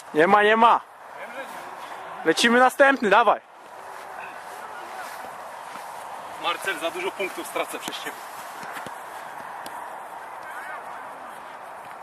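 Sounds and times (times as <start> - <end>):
outdoor background noise: 0.0 - 12.0.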